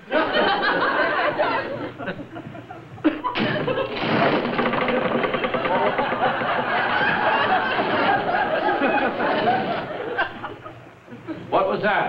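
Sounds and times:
studio audience laughing: 0:00.0 - 0:04.1, 0:05.5 - 0:11.5.

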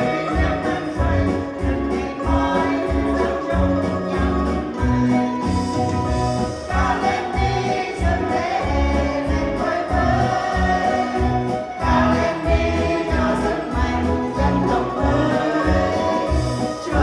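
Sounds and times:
women's choir singing: 0:00.0 - 0:04.5, 0:06.5 - 0:17.0.

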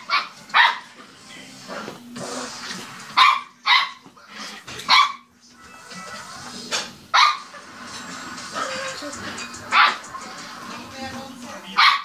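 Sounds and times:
dog barking: 0:00.0 - 0:00.9, 0:03.2 - 0:04.0, 0:04.9 - 0:05.3, 0:07.1 - 0:07.5, 0:09.7 - 0:10.0, 0:11.8 - 0:12.0.

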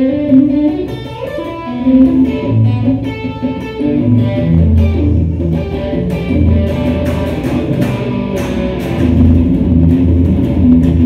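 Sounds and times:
loud electric guitar low notes: 0:00.0 - 0:11.0.

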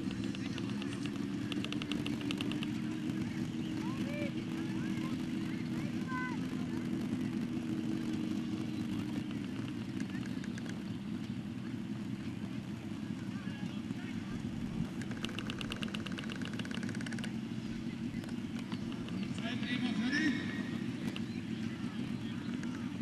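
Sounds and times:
small pump engine running: 0:00.0 - 0:23.0.

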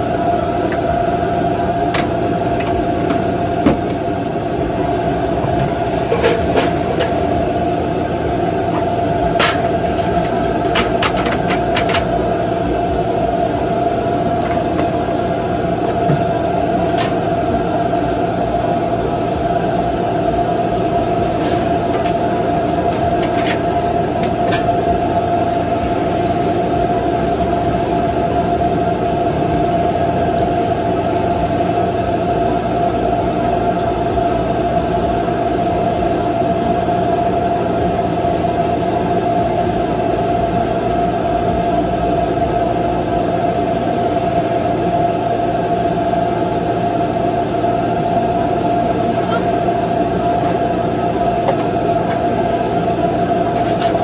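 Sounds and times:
machine drone with whine: 0:00.0 - 0:54.0.

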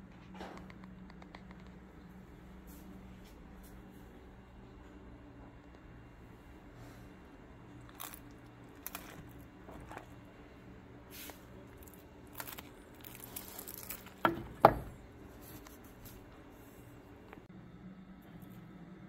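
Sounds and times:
meat squishing and tearing: 0:07.8 - 0:10.2, 0:11.2 - 0:14.2.

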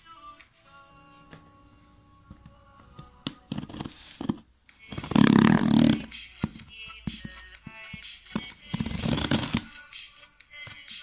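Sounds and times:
background music: 0:00.0 - 0:11.0
blade and cardboard clicks: 0:08.4 - 0:09.7
knife slitting packing tape: 0:08.7 - 0:09.7.

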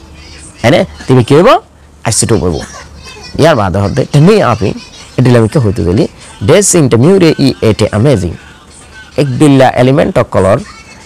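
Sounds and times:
man talking: 0:00.6 - 0:08.5, 0:09.1 - 0:10.7.

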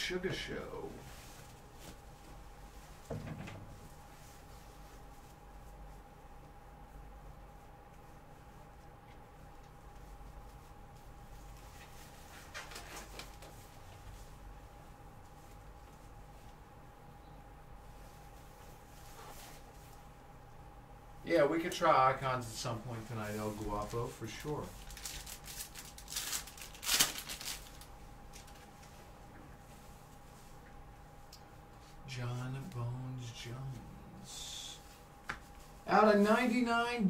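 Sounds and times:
cards rustling: 0:23.4 - 0:28.9
wrapper ripping: 0:23.8 - 0:28.6
packet crinkle: 0:23.8 - 0:28.7.

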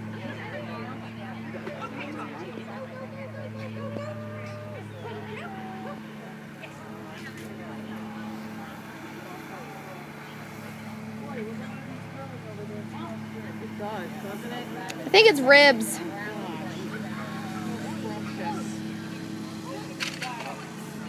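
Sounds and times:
distant voices: 0:00.0 - 0:21.0.

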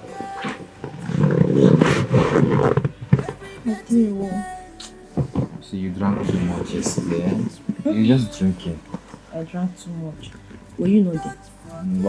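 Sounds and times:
soft background music: 0:00.0 - 0:12.0
woman groaning: 0:07.8 - 0:08.5.

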